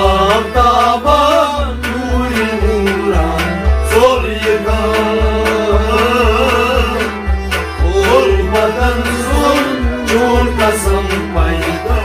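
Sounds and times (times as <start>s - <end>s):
harmonium drone: 0.0s - 12.0s
steady drum beat: 0.0s - 12.0s.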